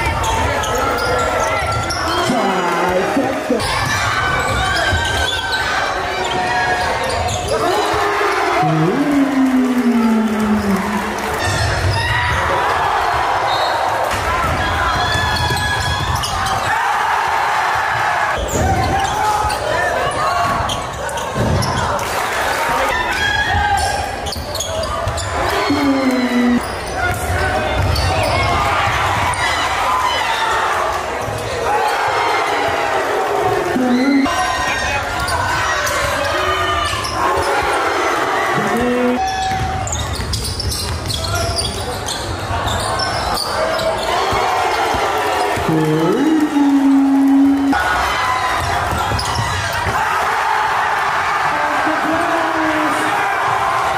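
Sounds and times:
crowd voices echoing: 0:00.0 - 0:53.9
sneakers squeaking on hardwood: 0:14.4 - 0:16.7, 0:20.4 - 0:21.9, 0:23.8 - 0:29.4, 0:38.6 - 0:46.2
basketball bouncing: 0:38.6 - 0:41.3.

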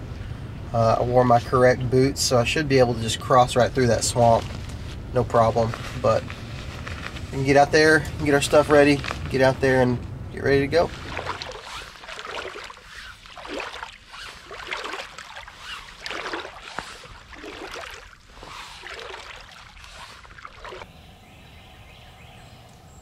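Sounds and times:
boots wading through water: 0:10.4 - 0:20.9.

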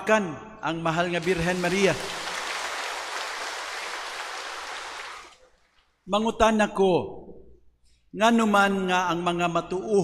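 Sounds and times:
congregation applauding: 0:01.2 - 0:05.6.

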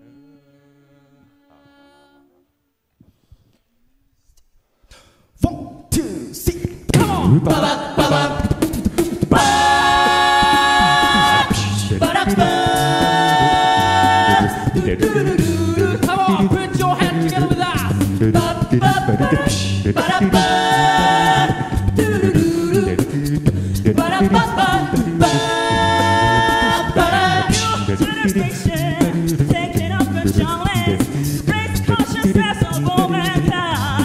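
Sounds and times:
beatboxed percussion: 0:04.4 - 0:34.0
a cappella group singing: 0:06.0 - 0:34.0.

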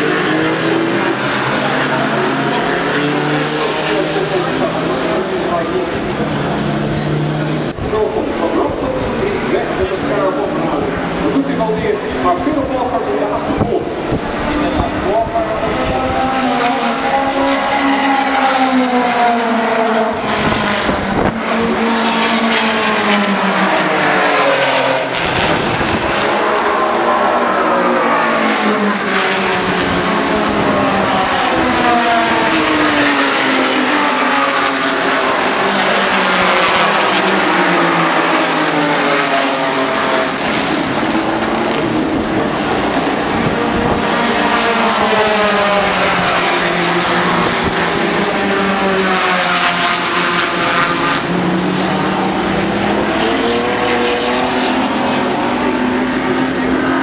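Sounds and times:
racing cars revving past: 0:00.0 - 0:57.0.

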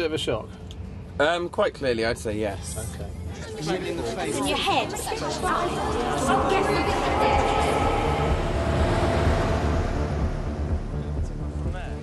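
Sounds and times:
limousine driving past on wet road: 0:06.0 - 0:11.7
music with pulsing bass beat: 0:06.0 - 0:12.0.

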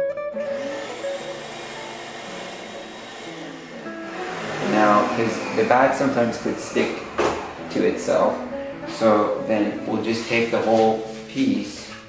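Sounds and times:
shop vac blowing air: 0:00.4 - 0:11.7.

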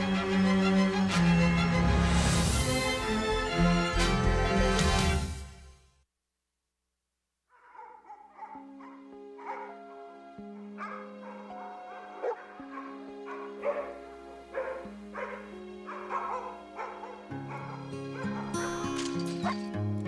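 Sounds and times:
music of long held chords: 0:00.0 - 0:05.5, 0:08.6 - 0:20.0
dogs barking: 0:07.5 - 0:19.7.

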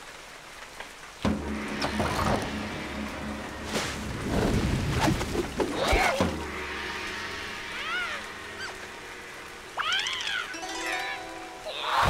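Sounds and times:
steady rain: 0:00.0 - 0:12.0
plucked zither string: 0:01.2 - 0:11.9
squeaky cartoon character calls: 0:09.8 - 0:12.0.

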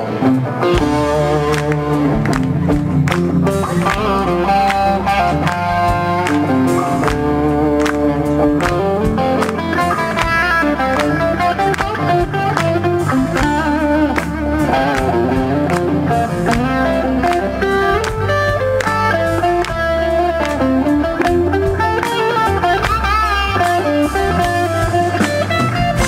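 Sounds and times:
bass: 0:00.0 - 0:26.0
electric guitar lead melody: 0:00.0 - 0:26.0
steady drums: 0:00.6 - 0:26.0.

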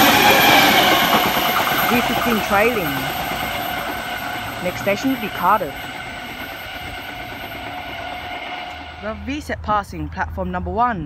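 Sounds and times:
high whining tones: 0:00.0 - 0:09.4
electric train rumbling: 0:00.0 - 0:11.0.

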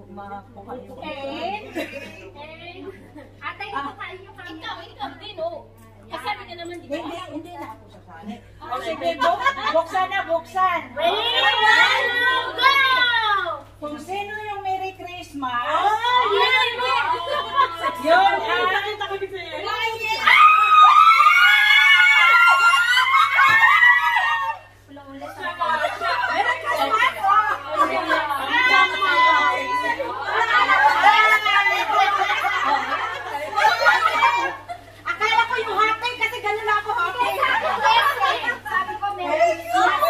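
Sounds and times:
women shrieking and squealing: 0:11.0 - 0:13.5, 0:19.8 - 0:24.8, 0:27.2 - 0:35.5.

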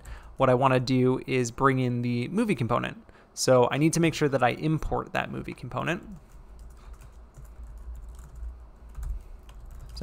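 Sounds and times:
steady low hum: 0:00.0 - 0:10.0
computer keyboard typing: 0:05.5 - 0:10.0.

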